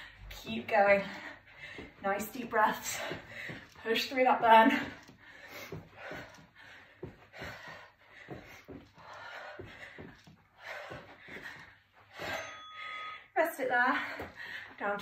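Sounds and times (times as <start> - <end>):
woman breathing hard: 0.0 - 0.3, 1.0 - 2.0, 2.8 - 3.9, 4.8 - 13.3, 13.9 - 14.8.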